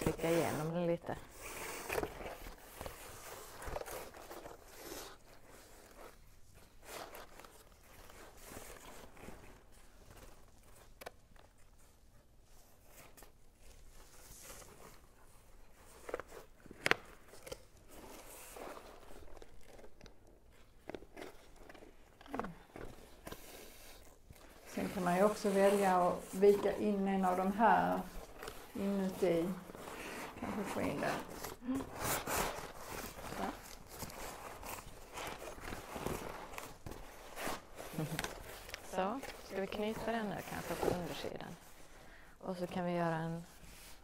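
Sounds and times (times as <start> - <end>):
cord pulled through cardboard: 0.0 - 41.9
cardboard and paper rustling: 0.0 - 42.0.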